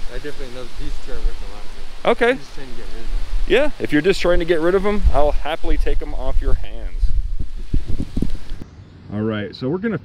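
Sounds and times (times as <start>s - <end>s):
wind buffeting microphone: 0.0s - 9.2s.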